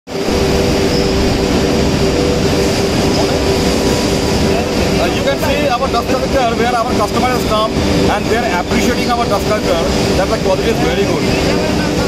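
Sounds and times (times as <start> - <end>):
machinery drone: 0.1 - 12.0.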